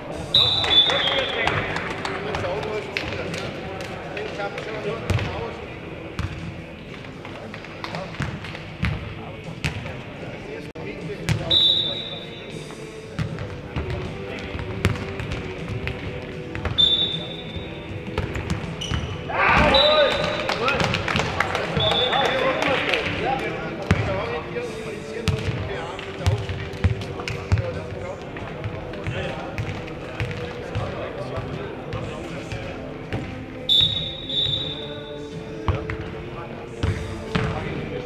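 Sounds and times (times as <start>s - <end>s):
players shouting: 19.2s - 20.4s.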